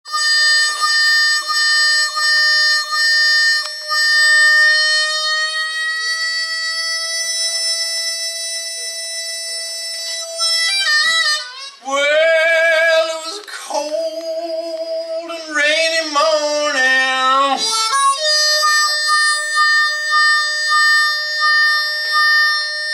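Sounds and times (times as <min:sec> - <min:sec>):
blues harmonica: 0:00.1 - 0:22.9.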